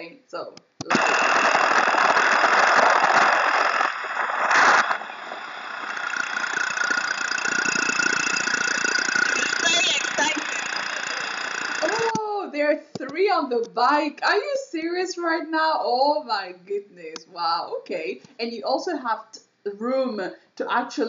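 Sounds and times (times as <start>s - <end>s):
woman speaking: 0.0s - 0.6s, 9.4s - 10.7s, 11.8s - 21.0s
motorcycle engine running: 6.1s - 12.1s.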